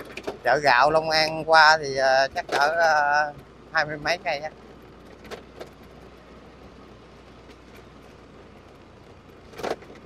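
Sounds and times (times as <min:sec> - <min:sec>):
vehicle engine hum and road noise: 0:00.0 - 0:10.0.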